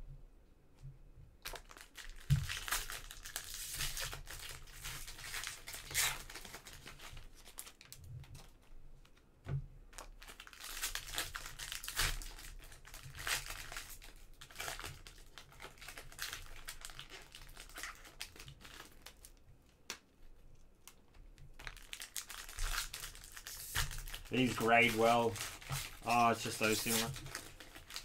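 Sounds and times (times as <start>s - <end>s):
foil wrappers crinkling and tearing: 1.4s - 8.6s, 9.9s - 20.0s, 21.5s - 28.0s.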